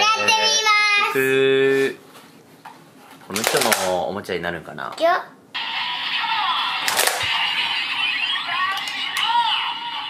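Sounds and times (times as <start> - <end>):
toy belt electronic music and voice: 8.1 - 10.0.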